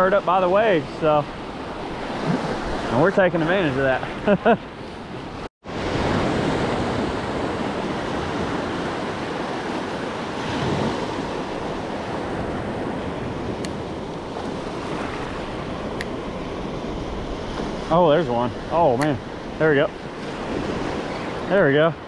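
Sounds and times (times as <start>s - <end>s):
ocean surf breaking: 0.0s - 22.0s.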